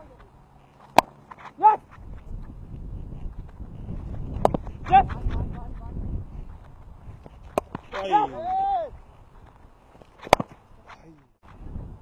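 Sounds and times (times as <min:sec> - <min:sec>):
cricket bat striking ball: 0:00.8 - 0:01.2, 0:07.4 - 0:08.0, 0:10.2 - 0:10.6
wind rumble on microphone: 0:01.8 - 0:09.9, 0:11.4 - 0:12.0.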